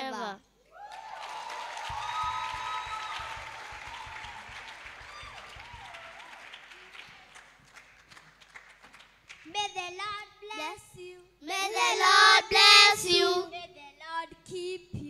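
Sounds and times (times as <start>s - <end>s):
congregation applauding: 0.8s - 9.5s.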